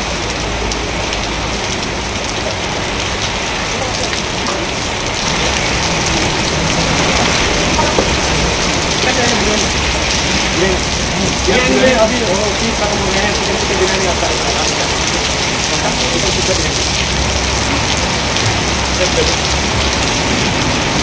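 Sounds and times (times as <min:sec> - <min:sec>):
heavy rain pouring: 0:00.0 - 0:21.0.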